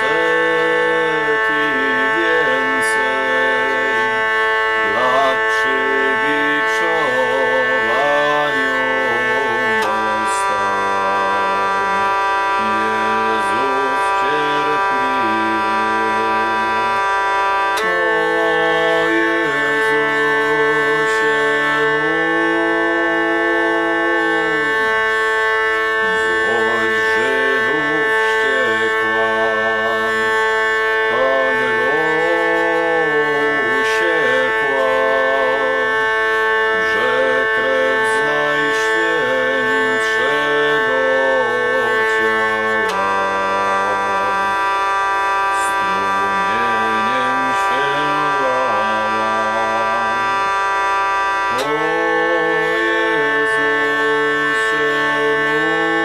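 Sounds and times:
hurdy-gurdy melody with drone: 0:00.0 - 0:56.0.

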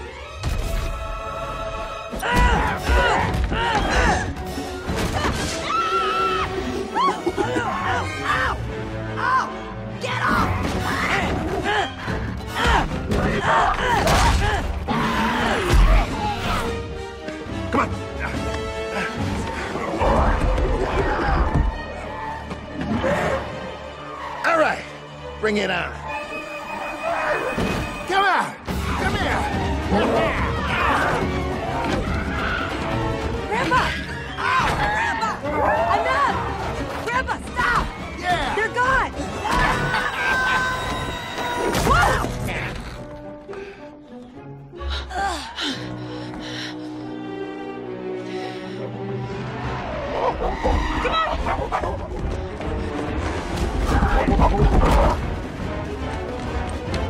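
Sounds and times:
film score with held notes: 0:00.0 - 0:57.0.

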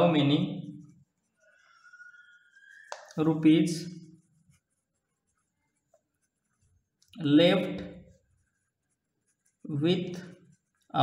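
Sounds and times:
man speaking: 0:00.0 - 0:00.6.

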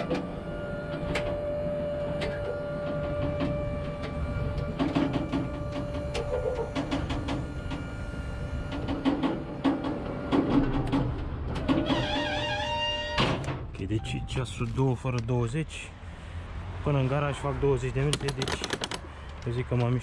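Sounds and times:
tail lift clunk: 0:00.0 - 0:12.3
hydraulic pump whining: 0:00.0 - 0:13.6.

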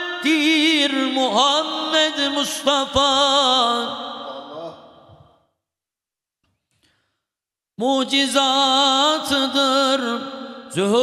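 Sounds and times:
man singing unaccompanied: 0:00.0 - 0:04.8, 0:07.8 - 0:11.0.

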